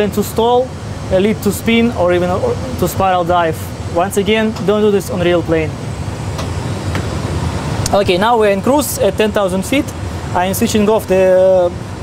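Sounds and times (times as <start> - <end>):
cockpit engine and airflow rumble: 0.0 - 12.0.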